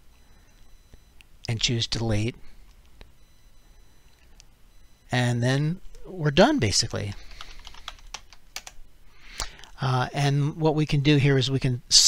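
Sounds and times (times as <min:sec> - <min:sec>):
computer keyboard typing: 0:06.7 - 0:08.8.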